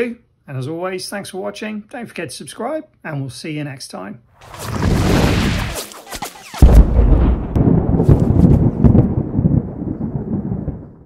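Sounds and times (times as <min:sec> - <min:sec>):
heavy boom: 0:04.5 - 0:05.8, 0:06.4 - 0:10.6
deep loud rumble with crackles: 0:06.6 - 0:11.0.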